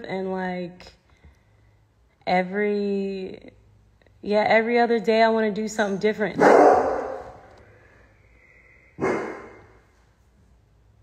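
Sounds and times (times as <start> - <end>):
dog barking: 6.4 - 7.5, 9.0 - 9.7.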